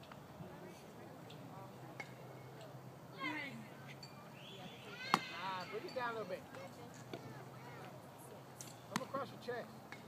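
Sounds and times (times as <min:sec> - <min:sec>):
distant high-pitched shout: 0:04.4 - 0:06.0.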